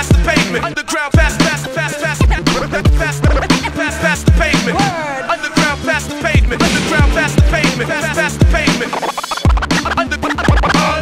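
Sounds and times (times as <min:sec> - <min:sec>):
hip hop beat with bass: 0:00.0 - 0:11.0
person rapping: 0:00.0 - 0:11.0
turntable scratches: 0:01.2 - 0:11.0.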